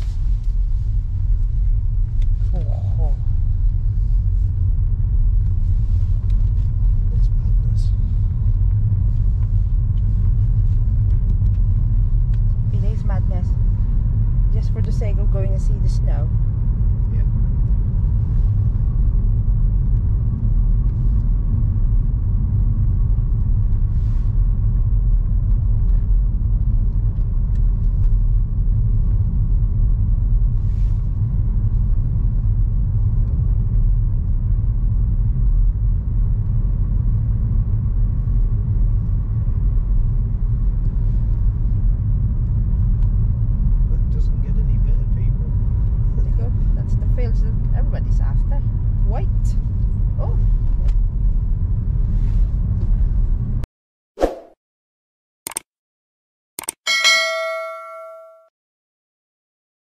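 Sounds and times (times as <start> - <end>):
car engine and tyre rumble: 0.0 - 53.7.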